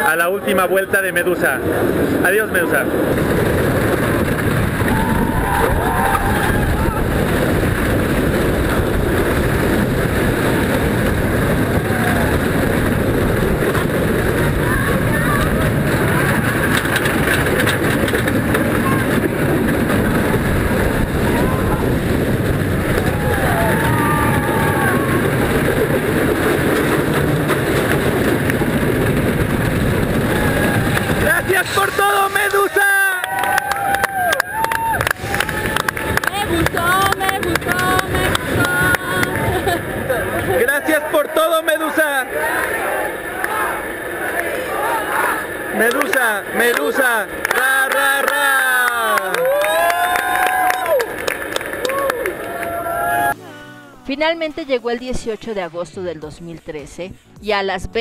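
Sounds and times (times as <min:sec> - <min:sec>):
roller coaster rumble and rattle: 0:00.0 - 0:53.4
wind on microphone: 0:00.5 - 0:40.8
riders yelling: 0:04.6 - 0:07.6, 0:10.4 - 0:13.1, 0:14.2 - 0:17.6, 0:18.4 - 0:26.2, 0:29.4 - 0:54.7.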